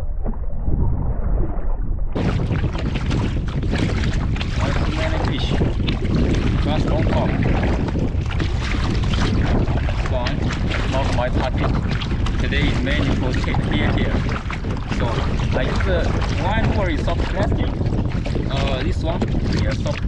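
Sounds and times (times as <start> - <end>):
water slapping hull: 0.0 - 20.0
wind buffeting microphone: 0.0 - 20.0
paddle splashes: 2.2 - 20.0.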